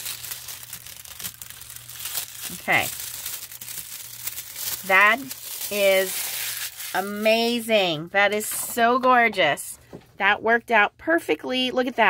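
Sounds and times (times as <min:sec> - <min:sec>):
foil sheet crinkling: 0:00.0 - 0:07.8.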